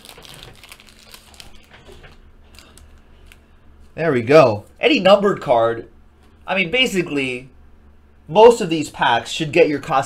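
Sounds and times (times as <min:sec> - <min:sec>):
plastic sleeves crinkling: 0:00.0 - 0:03.5.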